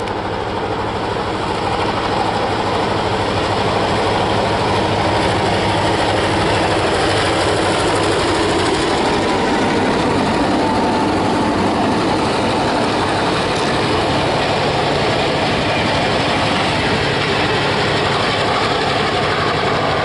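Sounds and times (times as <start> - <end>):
carriages rolling on rails: 0.0 - 20.0
diesel locomotive engines: 0.0 - 20.0.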